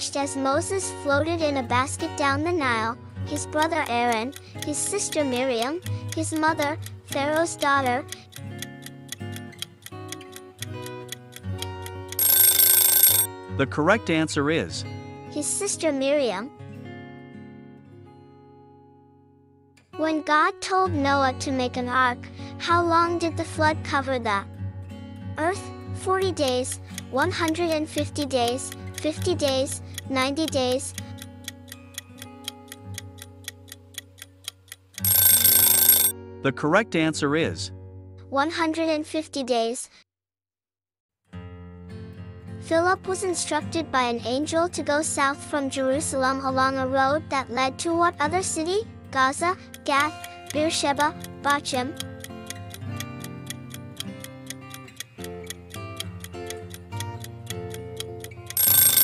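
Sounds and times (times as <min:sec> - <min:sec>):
background music with held notes: 0:00.0 - 0:12.2
rapid clock-like ticking: 0:03.3 - 0:13.3, 0:26.2 - 0:36.1, 0:49.5 - 0:59.0
loud ringing alarm: 0:12.2 - 0:13.3, 0:35.0 - 0:36.1, 0:58.6 - 0:59.0.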